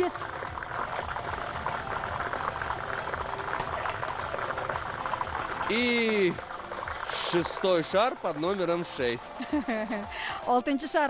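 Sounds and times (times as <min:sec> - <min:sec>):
plastic balls rattling in globe: 0:00.0 - 0:09.3.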